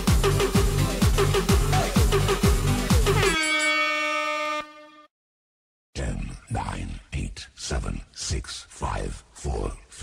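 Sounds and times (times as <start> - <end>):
dance music beat: 0.0 - 3.4
air horn: 3.1 - 5.2.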